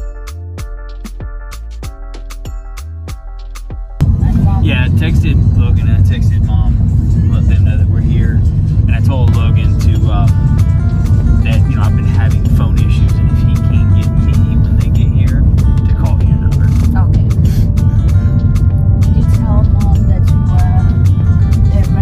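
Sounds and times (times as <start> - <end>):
music playing: 0.0 - 22.0
voices: 4.0 - 10.3, 11.4 - 17.7, 19.1 - 21.0
car road and engine rumble: 4.0 - 22.0.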